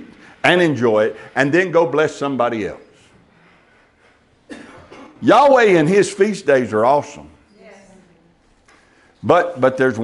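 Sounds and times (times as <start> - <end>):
man coughing: 4.5 - 5.3.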